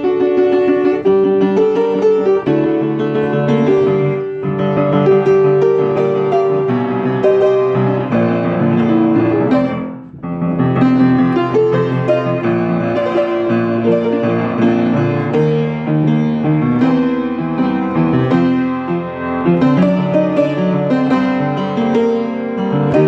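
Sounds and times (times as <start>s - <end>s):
fast solo piano: 0.0s - 23.0s.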